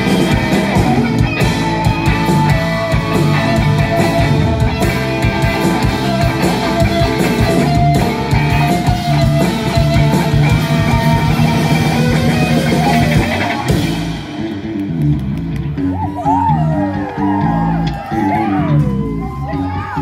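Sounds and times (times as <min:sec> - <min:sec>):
drum kit: 0:00.0 - 0:19.2
bass guitar: 0:00.0 - 0:20.0
distorted electric guitars: 0:00.0 - 0:20.0.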